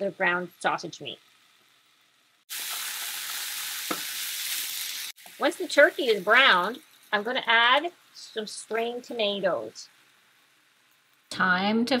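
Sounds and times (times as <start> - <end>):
meat sizzling in a frying pan: 0.0 - 11.4.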